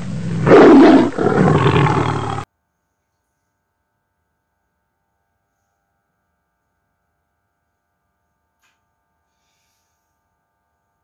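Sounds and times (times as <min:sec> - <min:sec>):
deep animal-like roar: 0:00.0 - 0:02.4.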